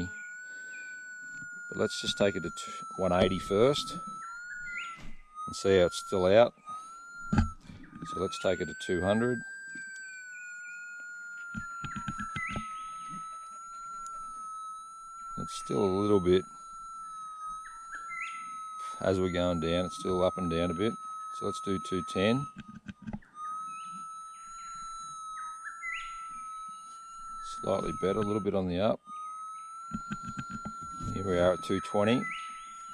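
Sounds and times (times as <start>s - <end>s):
metal detector threshold hum: 0.0s - 32.9s.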